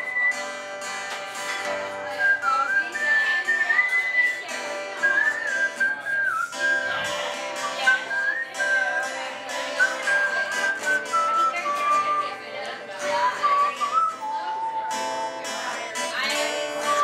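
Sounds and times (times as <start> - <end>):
man whistling a melody: 0.0 - 17.0
strummed acoustic guitar: 0.0 - 17.0.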